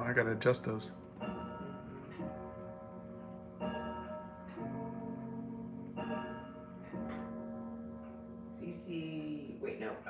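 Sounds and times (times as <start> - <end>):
clock chimes ringing: 0.0 - 9.9.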